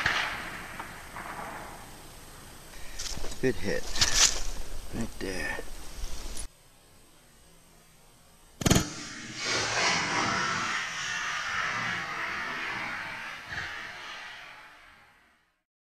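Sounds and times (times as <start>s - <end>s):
bullet crack: 8.6s - 9.0s.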